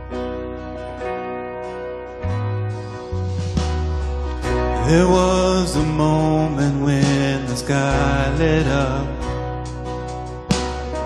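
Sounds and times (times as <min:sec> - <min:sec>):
acoustic guitar: 0:00.0 - 0:11.0
sustained low bass: 0:00.0 - 0:11.0
man singing: 0:04.8 - 0:09.5.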